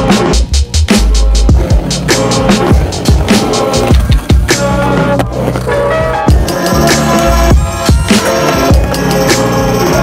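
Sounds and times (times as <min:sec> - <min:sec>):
electronic beat with drum hits: 0:00.0 - 0:04.8, 0:06.3 - 0:10.0
skateboard wheels rolling on concrete: 0:00.0 - 0:10.0.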